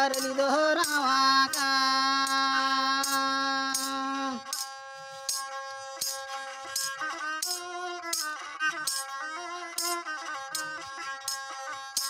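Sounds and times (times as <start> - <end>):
bowed fiddle melody: 0.0 - 12.0
percussive strikes: 0.0 - 12.0.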